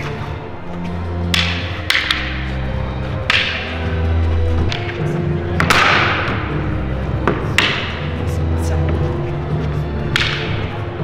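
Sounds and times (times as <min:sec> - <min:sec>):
background music with bass: 0:00.0 - 0:11.0
wooden staffs clacking: 0:00.0 - 0:11.0.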